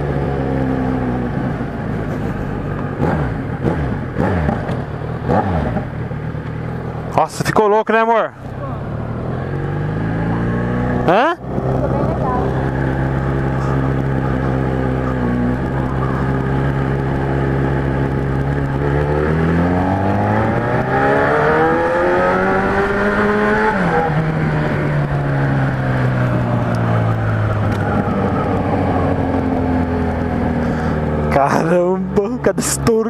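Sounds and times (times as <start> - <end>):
motorcycle engine revving: 0.0 - 33.0.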